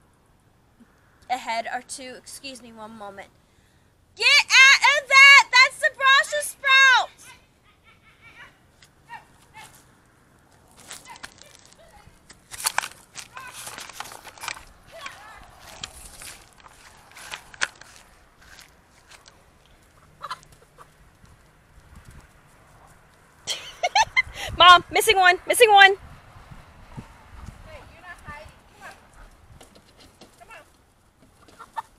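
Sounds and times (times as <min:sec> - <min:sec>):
woman shouting: 0:04.2 - 0:07.5, 0:08.3 - 0:09.7, 0:11.0 - 0:12.2, 0:14.9 - 0:15.6, 0:24.4 - 0:26.0, 0:27.7 - 0:29.0
chickens clucking and squawking: 0:19.8 - 0:21.2, 0:31.2 - 0:31.9
knocks and rustling: 0:29.5 - 0:30.4.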